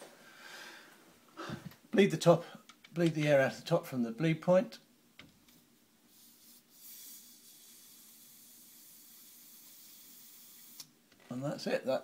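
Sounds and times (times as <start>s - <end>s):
air hissing from valve: 6.1s - 10.9s.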